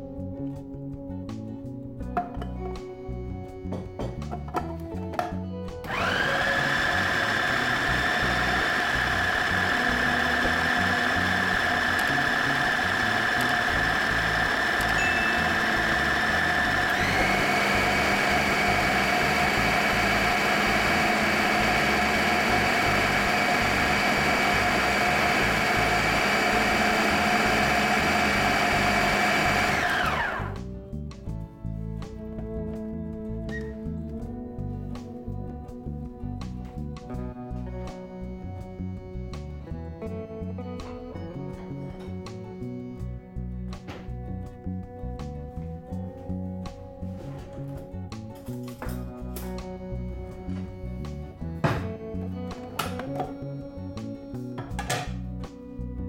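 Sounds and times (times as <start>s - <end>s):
food processor motor whine: 5.8s - 30.7s.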